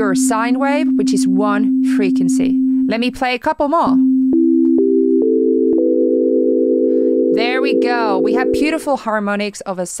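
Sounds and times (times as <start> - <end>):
sine-wave tones chord: 0.0 - 3.2, 4.0 - 8.9.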